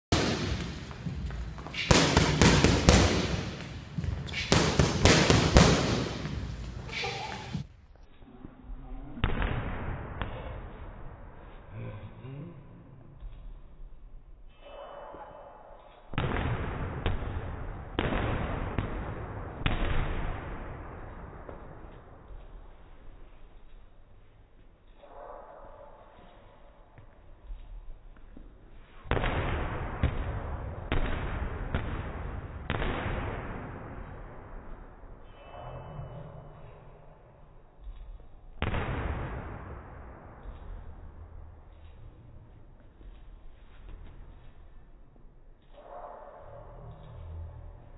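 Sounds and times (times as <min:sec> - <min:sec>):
boxing gloves smacking pads: 0:01.8 - 0:03.7, 0:04.3 - 0:06.4.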